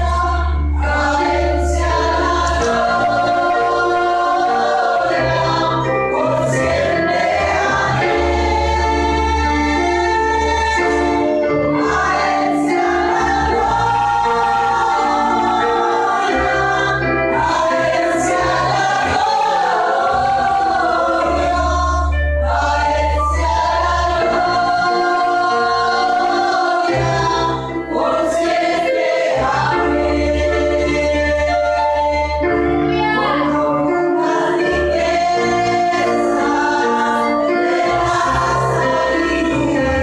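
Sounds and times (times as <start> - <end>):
congregation singing: 0.0 - 40.0.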